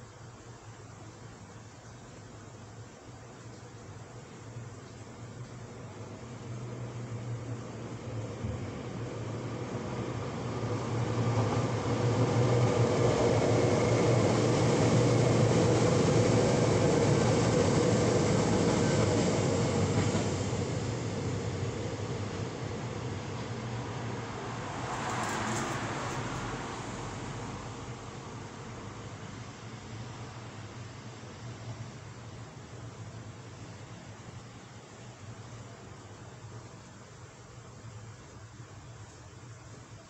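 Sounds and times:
vehicle passing by: 23.8s - 28.1s.

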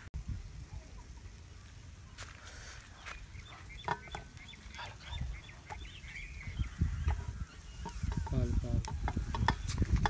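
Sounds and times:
chickens clucking: 2.9s - 10.0s.

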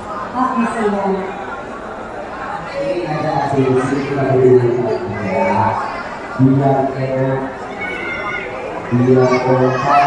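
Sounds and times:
murmur of crowd: 0.0s - 10.0s.

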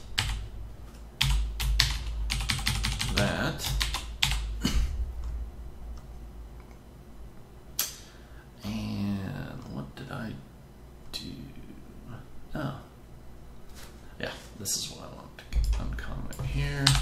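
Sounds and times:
typing on a computer keyboard: 0.2s - 0.4s, 1.2s - 4.5s.

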